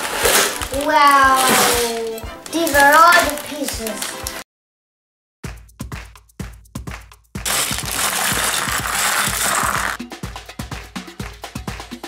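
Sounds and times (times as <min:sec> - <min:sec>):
plastic bag being torn open: 0:00.0 - 0:04.4, 0:07.5 - 0:10.0.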